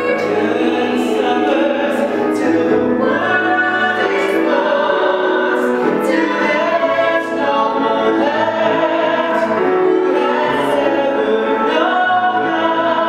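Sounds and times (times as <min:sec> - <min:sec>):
grand piano accompaniment: 0:00.0 - 0:13.0
man and woman singing duet: 0:00.0 - 0:13.0.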